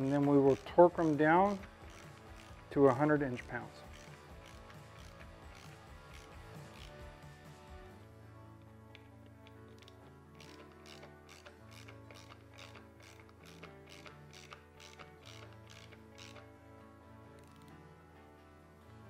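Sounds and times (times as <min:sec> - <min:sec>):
ratchet driver clicking: 0:00.0 - 0:07.0, 0:08.9 - 0:16.5
faint background music: 0:00.0 - 0:19.0.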